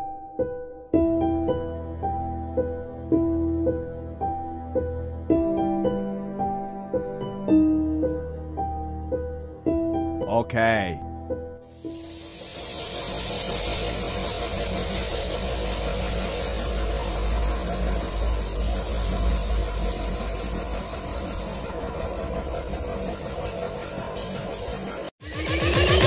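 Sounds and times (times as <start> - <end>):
spray gun hissing: 11.7 - 22.2.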